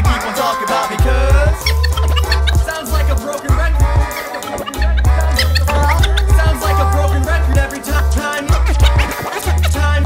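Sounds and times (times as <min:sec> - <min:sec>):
hip hop beat with deep bass: 0:00.0 - 0:10.0
turntable scratching: 0:00.1 - 0:10.0.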